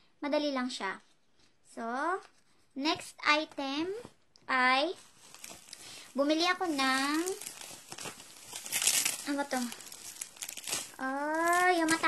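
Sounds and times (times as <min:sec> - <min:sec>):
plastic packaging crinkling: 0:04.8 - 0:12.0.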